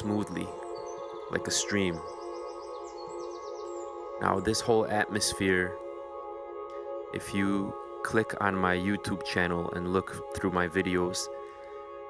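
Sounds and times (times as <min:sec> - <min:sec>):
high bird chirps: 0:00.0 - 0:04.5
ambient music drone: 0:00.0 - 0:12.0.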